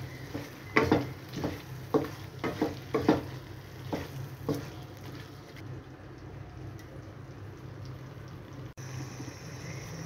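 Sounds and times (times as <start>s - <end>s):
spatula scraping a pan: 0.0s - 5.5s
food sizzling: 0.0s - 10.0s.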